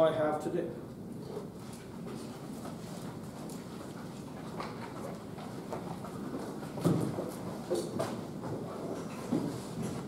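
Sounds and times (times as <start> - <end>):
low room noise: 0.0 - 10.0
footsteps and shuffling: 1.2 - 10.0.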